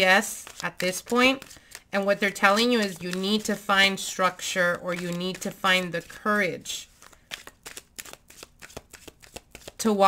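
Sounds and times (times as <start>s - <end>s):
cards being shuffled: 0.2s - 10.0s.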